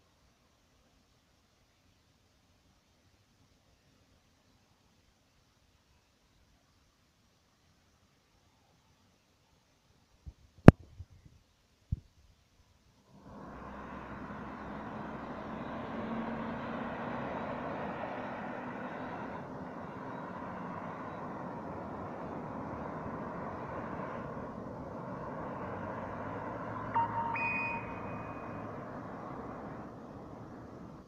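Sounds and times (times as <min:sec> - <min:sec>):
cars passing: 0:13.1 - 0:31.0
brief high-pitched tone: 0:26.8 - 0:28.8.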